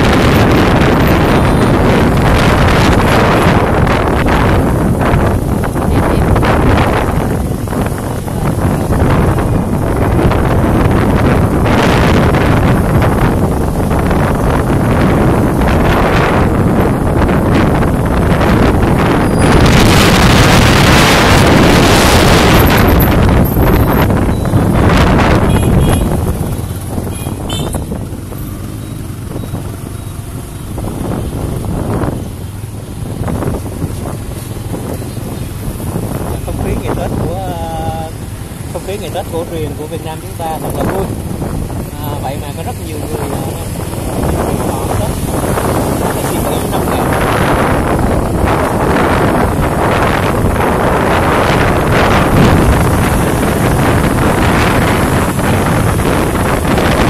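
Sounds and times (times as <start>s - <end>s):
passing motorbike traffic: 0.0s - 57.0s
wind buffeting microphone: 0.0s - 57.0s.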